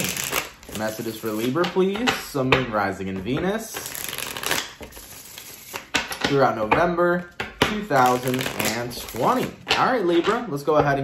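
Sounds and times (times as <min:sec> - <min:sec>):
cards being shuffled: 0:00.0 - 0:02.2, 0:03.6 - 0:06.3, 0:07.8 - 0:09.8.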